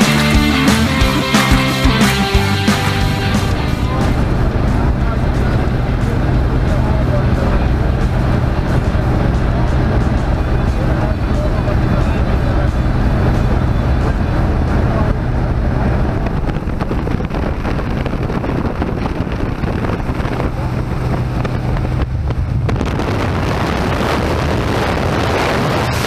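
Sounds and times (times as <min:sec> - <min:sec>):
propeller plane engine drone: 0:00.0 - 0:26.0
rushing wind: 0:00.0 - 0:26.0.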